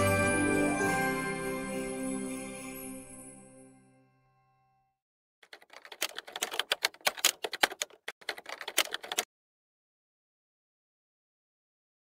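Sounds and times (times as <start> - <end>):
rapid clatter of clicks: 5.4 - 9.3.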